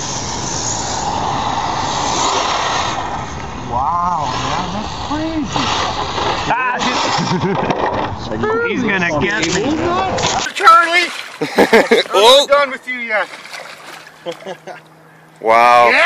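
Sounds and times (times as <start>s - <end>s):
toy truck driving over snow: 5.1s - 8.4s.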